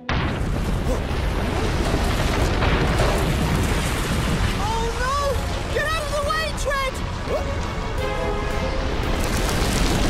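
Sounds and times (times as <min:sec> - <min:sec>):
avalanche rumbling roar: 0:00.1 - 0:08.0.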